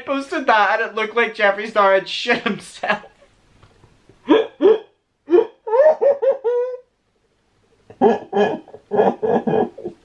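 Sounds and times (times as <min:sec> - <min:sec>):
man laughing hard: 0:04.3 - 0:06.8, 0:07.9 - 0:10.0.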